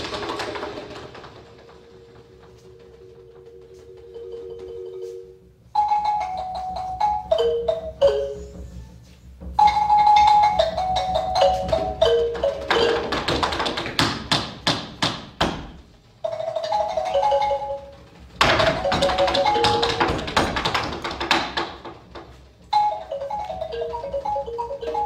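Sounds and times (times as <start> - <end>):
plucked mallet-like notes: 3.4 - 8.7
loud drum strikes: 11.6 - 16.4, 18.4 - 22.0.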